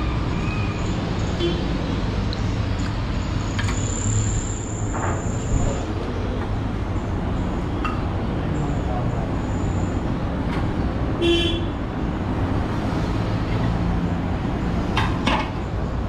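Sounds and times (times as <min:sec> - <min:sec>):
street traffic rumbling: 0:00.0 - 0:16.0
vehicle horn toot: 0:11.2 - 0:11.8.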